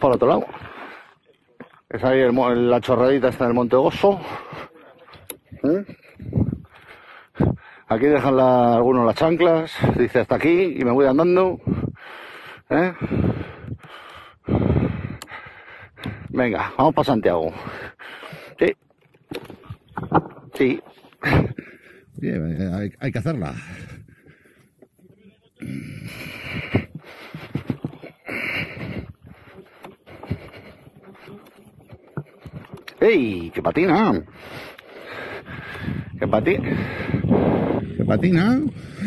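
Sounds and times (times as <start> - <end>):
wind buffeting microphone: 6.2 - 6.8, 13.0 - 13.8, 14.4 - 15.2, 35.2 - 39.0
small knocks: 19.1 - 20.6.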